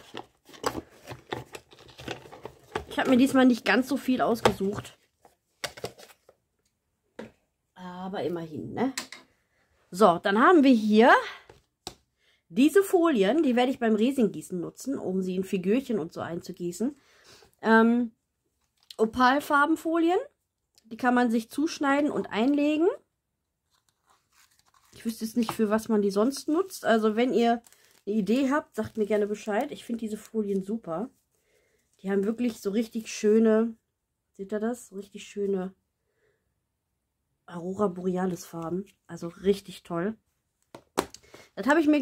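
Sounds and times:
plastic box crinkles and clicks: 0:00.0 - 0:03.3, 0:05.6 - 0:06.3.

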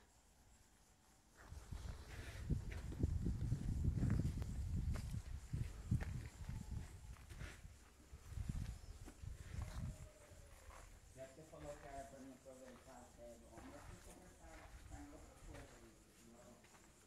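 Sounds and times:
footsteps on dirt: 0:01.4 - 0:07.6, 0:08.4 - 0:12.1, 0:12.7 - 0:12.9, 0:13.5 - 0:15.8
microphone rumble: 0:02.4 - 0:06.8.

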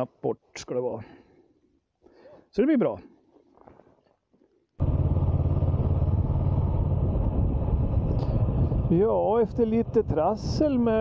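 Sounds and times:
motorcycle engine running: 0:04.8 - 0:11.0.

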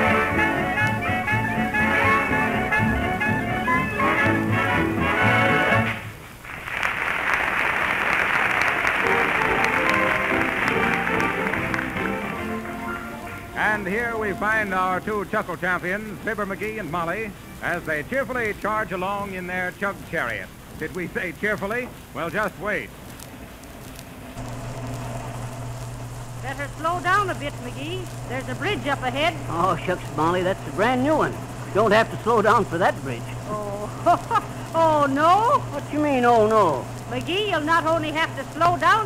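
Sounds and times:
orchestra playing softly: 0:00.0 - 0:06.1, 0:08.6 - 0:20.1
recording hiss: 0:00.0 - 0:39.0
audience applauding: 0:05.4 - 0:13.6.

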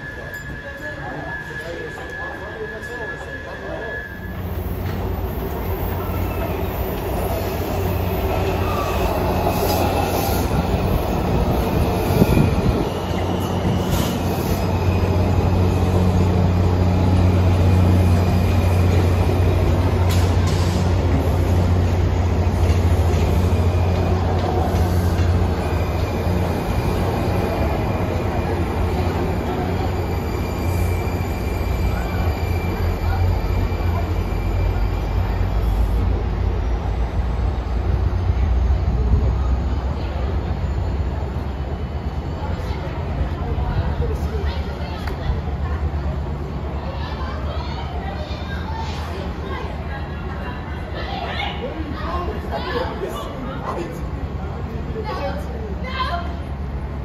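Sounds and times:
railcar hum and whine: 0:00.0 - 0:57.0.

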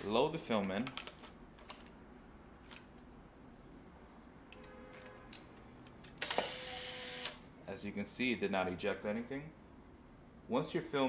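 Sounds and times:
camera motor whir: 0:06.2 - 0:07.4.

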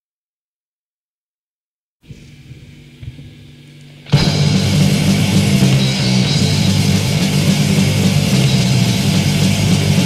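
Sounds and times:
thrash metal band playing: 0:03.9 - 0:10.0.

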